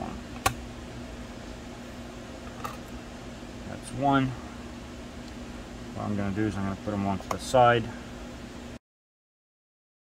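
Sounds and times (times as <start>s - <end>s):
computer fans humming: 0.0s - 8.8s.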